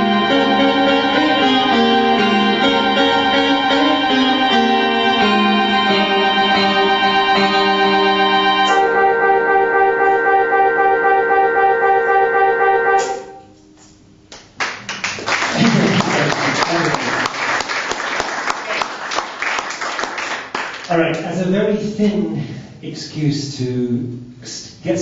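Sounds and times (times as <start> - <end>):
electronic keyboard chord: 0.0 - 13.8
audience applauding: 14.5 - 21.0.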